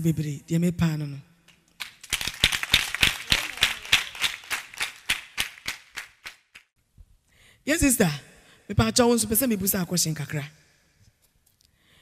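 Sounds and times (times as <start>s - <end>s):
hands clapping: 1.5s - 6.7s.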